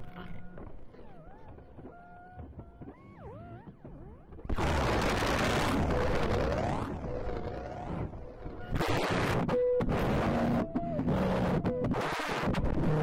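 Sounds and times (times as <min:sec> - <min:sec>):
gliding electronic tones: 0:00.0 - 0:13.0.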